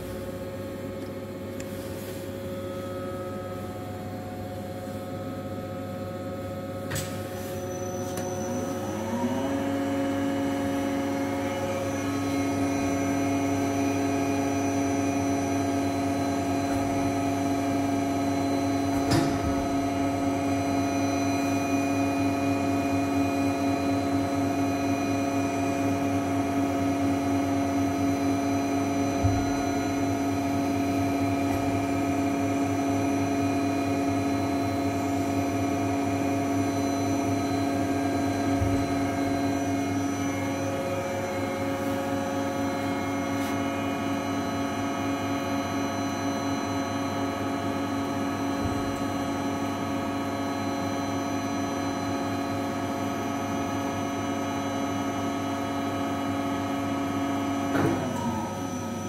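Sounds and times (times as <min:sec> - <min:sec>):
grinding machine humming: 0:07.5 - 0:59.0.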